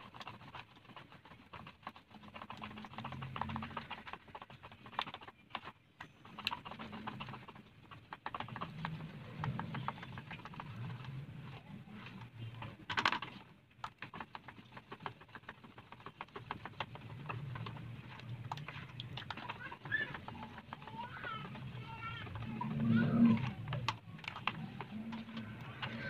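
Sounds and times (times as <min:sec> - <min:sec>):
hand stirring batter in bowl: 0:00.0 - 0:26.0.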